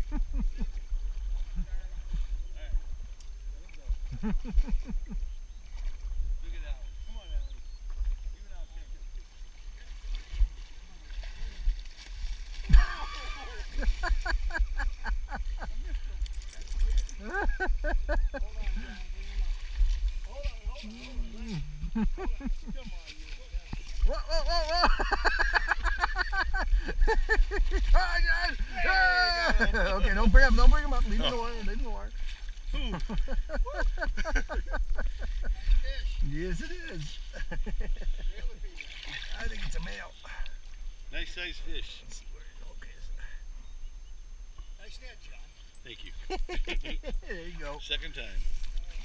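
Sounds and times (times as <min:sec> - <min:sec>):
water splashing around wading legs: 0:09.4 - 0:28.8, 0:30.2 - 0:36.3, 0:38.7 - 0:40.0, 0:48.4 - 0:49.0.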